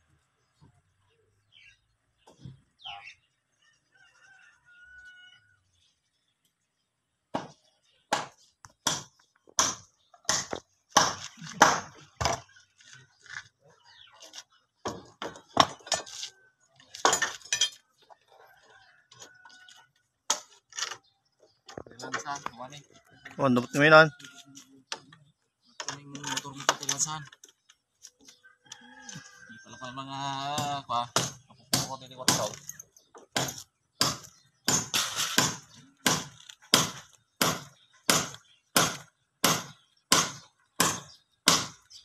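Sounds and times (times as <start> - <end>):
sharp knocks on bamboo poles: 7.3 - 12.5, 30.6 - 32.6, 33.2 - 41.8.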